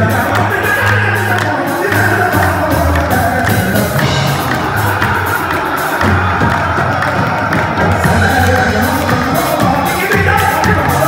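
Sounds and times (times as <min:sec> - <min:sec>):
chorus clapping in time: 0:00.0 - 0:11.0
group accompaniment: 0:00.0 - 0:11.0
man singing lead vocal: 0:00.0 - 0:11.0.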